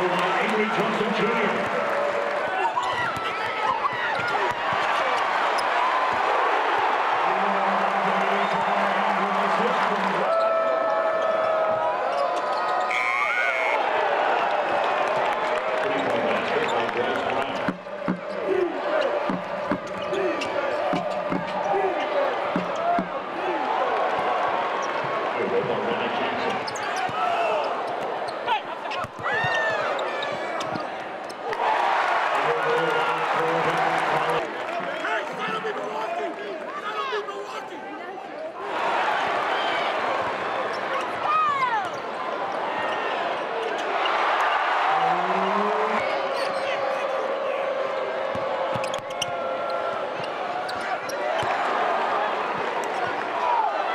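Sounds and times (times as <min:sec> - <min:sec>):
crowd noise and voices: 0:00.0 - 0:53.9
shoes squeaking on court: 0:17.6 - 0:23.2, 0:26.5 - 0:31.4, 0:48.6 - 0:51.6
basketball bouncing on hardwood: 0:19.3 - 0:20.1, 0:22.5 - 0:23.2.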